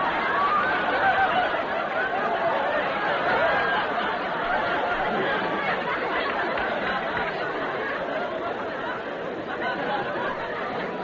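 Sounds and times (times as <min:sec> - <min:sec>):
studio audience laughing: 0:00.0 - 0:11.0.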